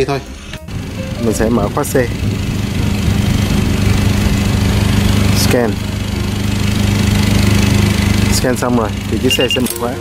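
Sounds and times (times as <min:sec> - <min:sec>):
small engine running steadily: 0:00.7 - 0:10.0.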